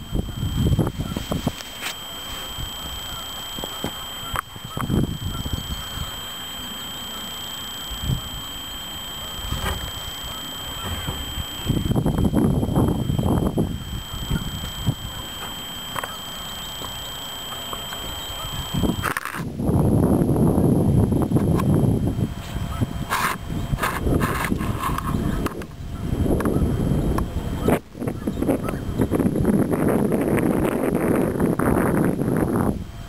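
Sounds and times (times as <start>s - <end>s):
wind gusting against microphone: 0.0s - 17.5s, 18.1s - 33.0s
faint high whine: 0.0s - 33.0s
sharp clicks: 3.5s - 5.0s, 15.4s - 18.3s.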